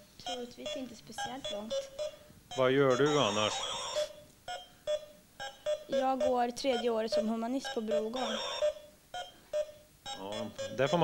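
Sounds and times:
short electronic beeps: 0.2 - 11.0.

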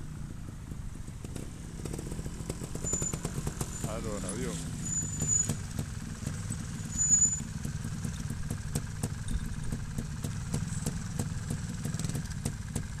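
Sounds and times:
motorcycle engine revving: 0.0 - 13.0
brief high squeal: 2.8 - 4.0, 4.8 - 5.6, 6.8 - 7.5.

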